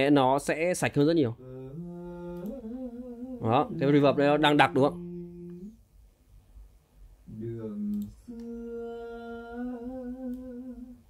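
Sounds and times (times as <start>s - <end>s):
person singing long note: 1.4s - 5.8s, 7.3s - 11.0s.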